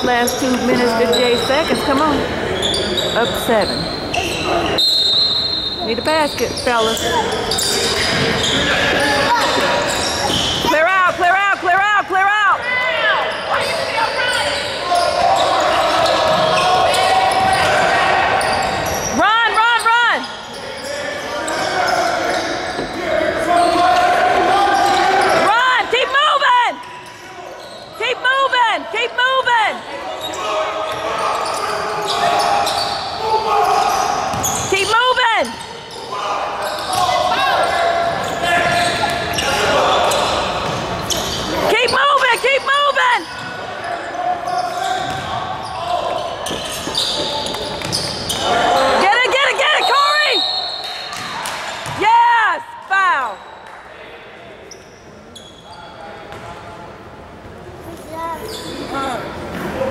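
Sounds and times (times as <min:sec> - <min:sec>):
shoes squeaking on hardwood floor: 0:00.0 - 0:11.2, 0:26.8 - 0:28.0, 0:30.2 - 0:50.9, 0:54.7 - 0:55.8
spectators' voices in a hall: 0:00.0 - 0:59.9.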